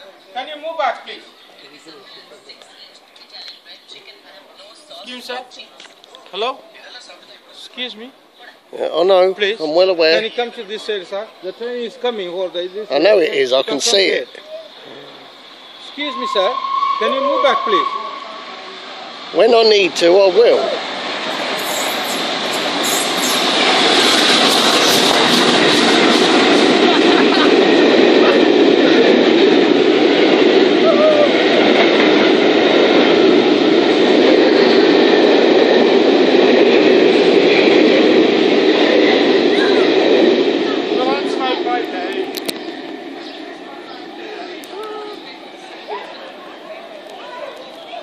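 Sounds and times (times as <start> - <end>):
train wheels rumbling on rail: 8.2 - 48.0.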